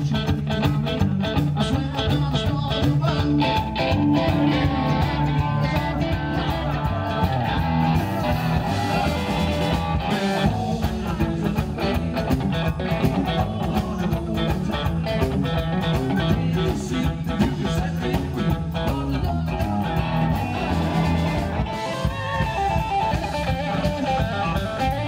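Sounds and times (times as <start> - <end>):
rockabilly band playing live: 0.0 - 25.0.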